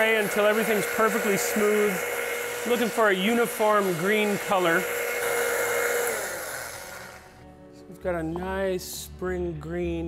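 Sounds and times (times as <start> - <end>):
blender motor whine: 0.0 - 7.4.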